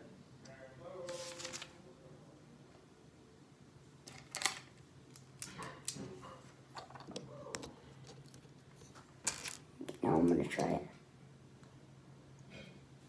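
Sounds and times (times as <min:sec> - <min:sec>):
plastic bricks clicking: 0:09.2 - 0:09.6.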